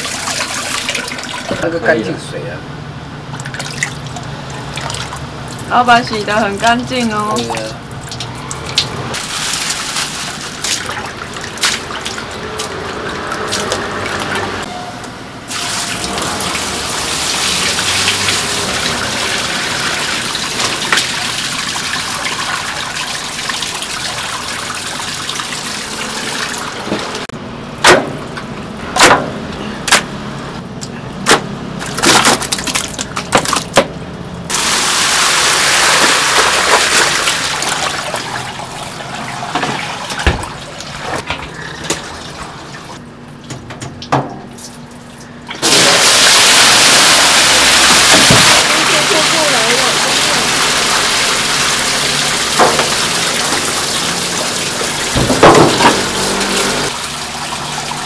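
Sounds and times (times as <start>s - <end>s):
water gushing from hose: 0.0s - 1.6s, 3.4s - 14.7s, 15.5s - 27.3s, 34.5s - 43.0s, 45.5s - 58.0s.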